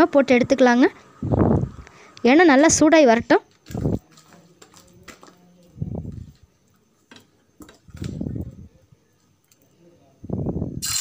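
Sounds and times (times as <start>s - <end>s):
hot oil sizzling loudly: 10.8s - 11.0s.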